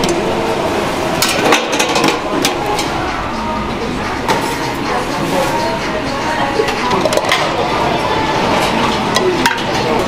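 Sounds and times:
din of busy serving line: 0.0s - 10.0s
metal pans and utensils clattering: 1.2s - 3.0s, 4.2s - 5.8s, 6.6s - 10.0s.

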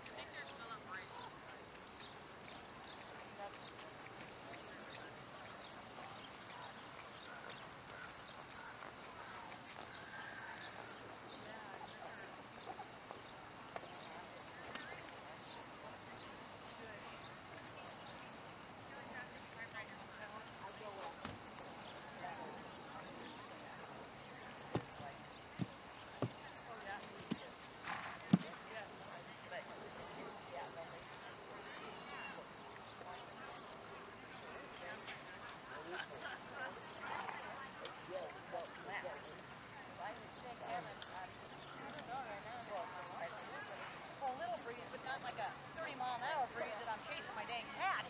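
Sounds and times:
faint voices: 0.0s - 48.0s.

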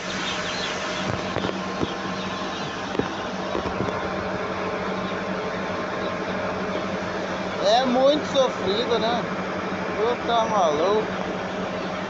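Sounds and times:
chicks cheeping: 0.0s - 12.0s
steady low hum: 0.0s - 12.0s.

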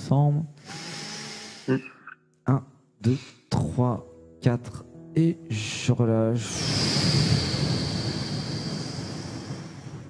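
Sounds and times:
deep breath close to microphone: 0.6s - 1.8s, 6.5s - 10.0s
person speaking slowly: 1.7s - 6.6s.

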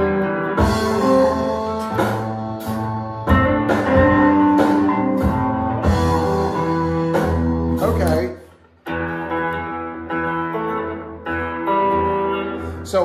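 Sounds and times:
electric guitar fingerstyle: 0.0s - 13.0s.

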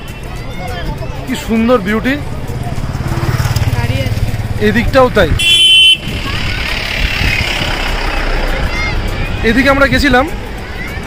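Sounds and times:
road traffic rumble: 0.0s - 11.0s
vehicle passing: 0.4s - 11.0s.

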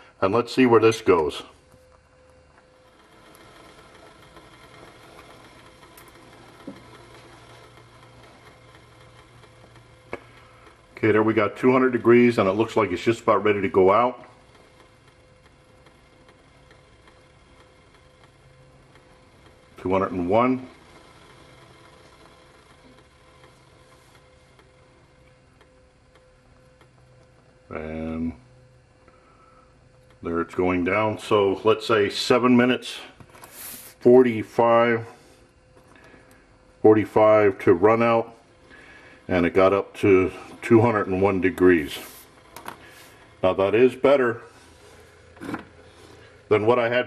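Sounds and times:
faint background hum: 0.0s - 47.0s
background hiss: 27.7s - 37.4s, 38.0s - 47.0s.

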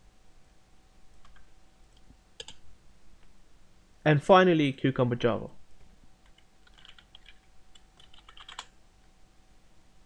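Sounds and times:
computer keyboard typing: 1.2s - 2.6s, 6.2s - 8.7s.

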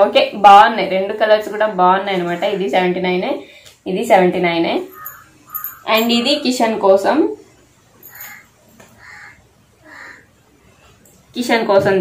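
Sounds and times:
bird calling: 4.8s - 7.2s, 8.0s - 10.9s.

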